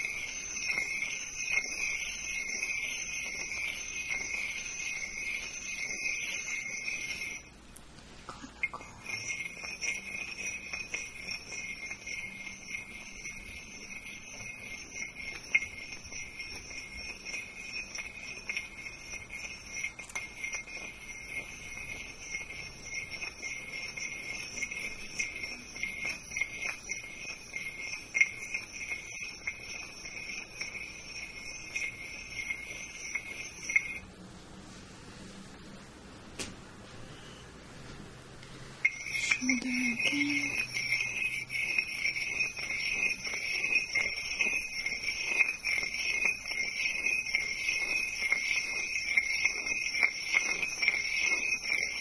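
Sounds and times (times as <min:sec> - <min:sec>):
steady high ringing tone: 0:00.0 - 0:35.8, 0:37.0 - 0:37.5, 0:38.6 - 0:52.0.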